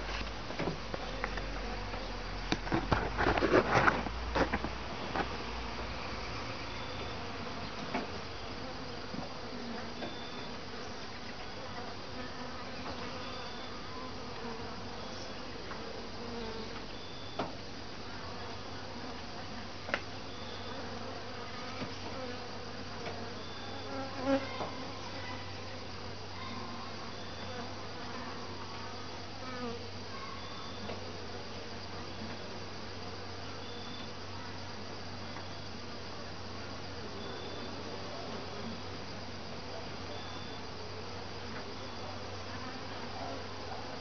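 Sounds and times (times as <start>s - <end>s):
honeybees buzzing: 0.0s - 44.0s.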